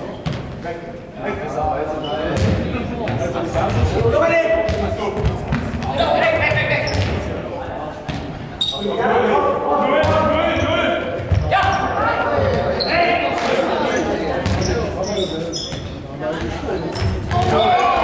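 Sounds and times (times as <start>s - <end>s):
players calling and shouting: 0.0s - 18.0s.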